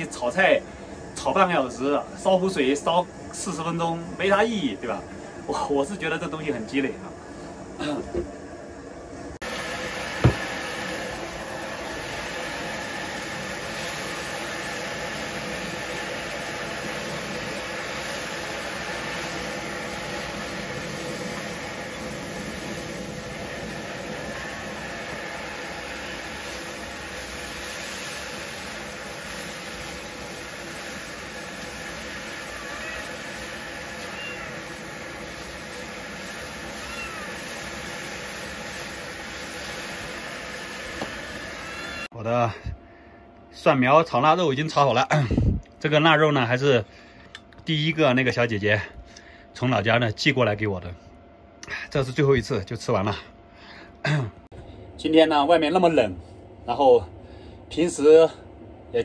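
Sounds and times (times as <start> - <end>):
gas burner noise: 0.0 - 51.0, 51.6 - 59.0
food sizzling in a wok: 9.4 - 42.1
cat meowing faintly: 32.3 - 34.8, 36.7 - 37.6.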